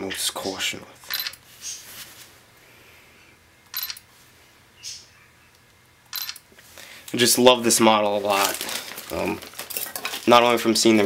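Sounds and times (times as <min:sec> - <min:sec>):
low room noise: 0:00.0 - 0:11.0
camera shutter click: 0:03.8 - 0:04.0, 0:06.1 - 0:06.4.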